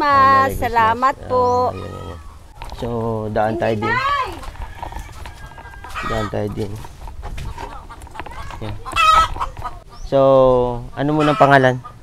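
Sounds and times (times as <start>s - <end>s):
chickens clucking: 0.1s - 12.0s
loud high-pitched chicken call: 5.0s - 6.4s, 7.5s - 9.9s, 11.1s - 11.7s.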